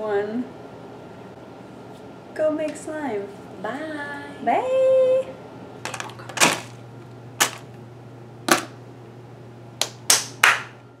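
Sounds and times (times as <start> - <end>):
plastic cups thrown into trash can: 5.9 - 6.8, 7.4 - 7.7, 8.5 - 8.8.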